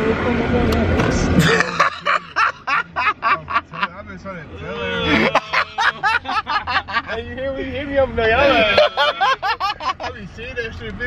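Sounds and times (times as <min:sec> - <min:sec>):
low car cabin hum: 0:00.0 - 0:11.0
man laughing: 0:01.4 - 0:04.0, 0:05.0 - 0:07.2, 0:08.4 - 0:10.2.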